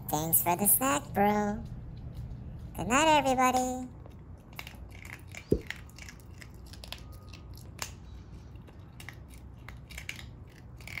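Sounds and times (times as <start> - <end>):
low steady hum: 0.0 - 11.0
dog chewing crunches: 1.2 - 11.0.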